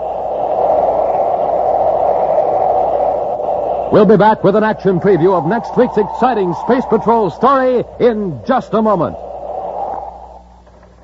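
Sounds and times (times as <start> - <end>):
steady rushing noise: 0.0 - 11.0
announcer speaking: 3.9 - 9.2.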